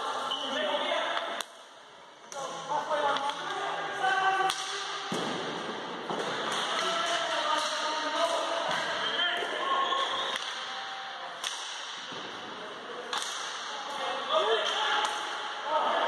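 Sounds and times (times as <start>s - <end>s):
players calling out echoing: 2.3s - 16.0s
hockey stick clacks: 6.2s - 8.9s, 11.4s - 12.0s.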